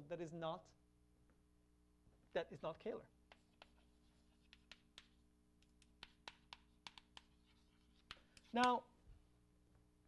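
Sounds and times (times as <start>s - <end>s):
chalk tapping and scratching on blackboard: 3.3s - 8.8s.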